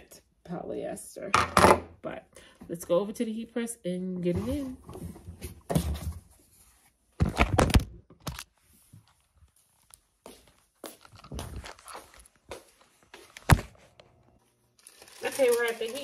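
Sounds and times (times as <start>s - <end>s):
objects knocking and thudding: 1.4s - 2.0s, 4.4s - 6.4s, 7.2s - 8.4s.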